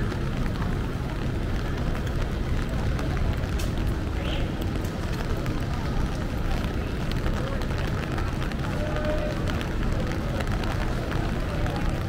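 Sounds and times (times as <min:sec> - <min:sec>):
rain ticks: 0:00.0 - 0:12.0
traffic rumble: 0:00.0 - 0:12.0.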